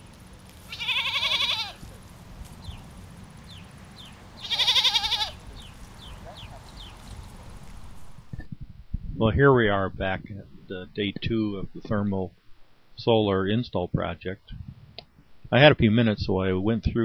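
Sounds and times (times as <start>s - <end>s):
goats and sheep bleating: 0.5s - 2.9s, 4.0s - 7.1s.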